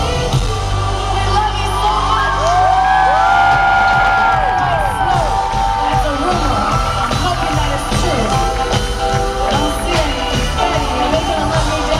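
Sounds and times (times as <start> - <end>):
crowd cheering and whooping: 0.0 - 11.9
live pop band playing: 0.0 - 11.9.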